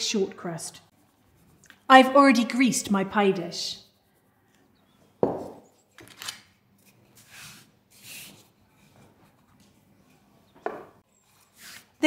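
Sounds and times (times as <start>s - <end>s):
rustle of hands and pastry: 6.7s - 12.0s.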